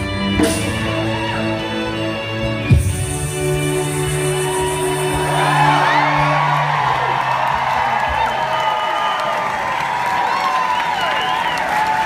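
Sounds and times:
crowd cheering and whooping: 0:04.0 - 0:12.0.

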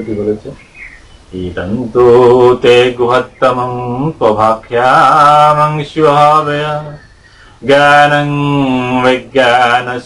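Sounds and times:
man chanting: 0:01.3 - 0:07.0, 0:07.6 - 0:10.0.

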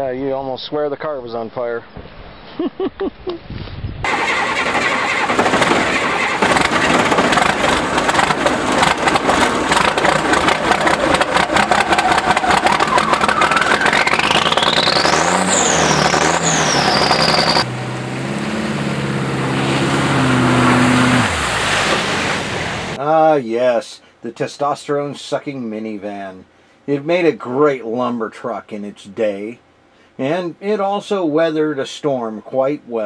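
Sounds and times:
diesel truck engine revving: 0:04.1 - 0:23.0
low engine-like drone: 0:04.1 - 0:23.0
whine rising in pitch: 0:06.6 - 0:23.0.

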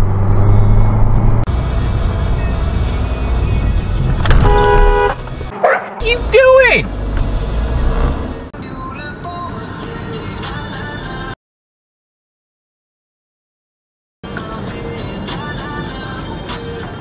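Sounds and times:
car cabin road noise: 0:00.0 - 0:10.6, 0:14.2 - 0:17.0
car horn: 0:04.2 - 0:06.6
man shouting: 0:05.7 - 0:06.9.

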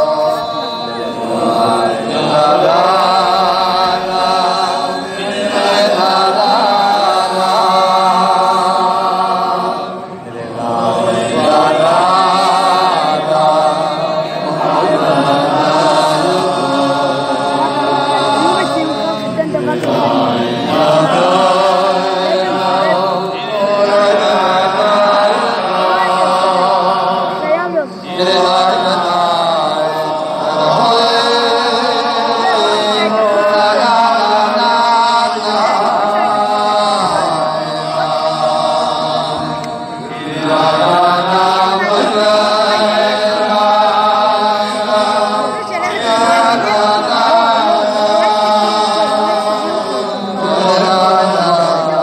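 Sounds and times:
men singing over loudspeakers: 0:00.0 - 0:52.0
open-air crowd: 0:00.0 - 0:52.0.

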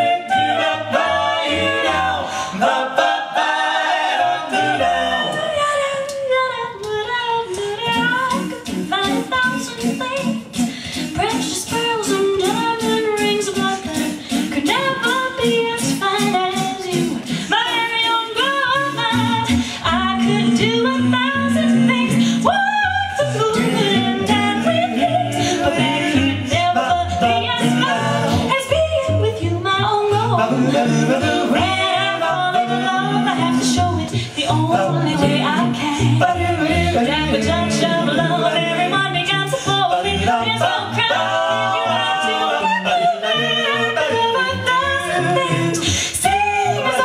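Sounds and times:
a cappella group singing: 0:00.0 - 0:47.0.

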